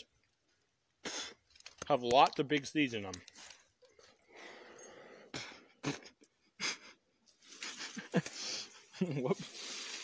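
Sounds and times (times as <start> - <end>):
person breathing faintly: 4.0 - 5.8.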